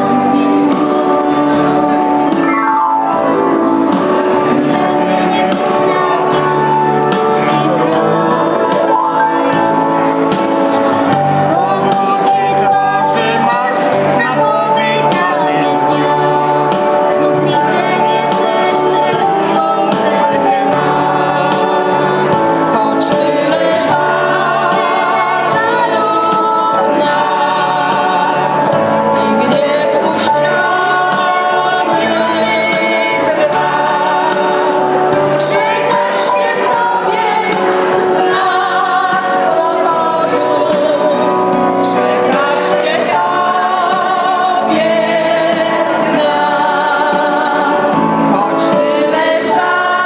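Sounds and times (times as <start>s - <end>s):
girl and man singing a carol: 11.0s - 41.3s.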